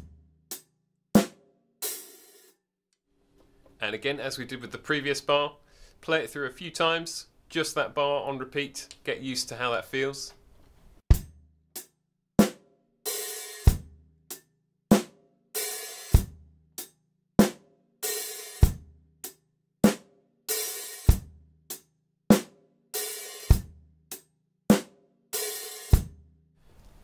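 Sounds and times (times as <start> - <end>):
drum kit playing rock groove: 0.0 - 2.6, 11.0 - 26.2.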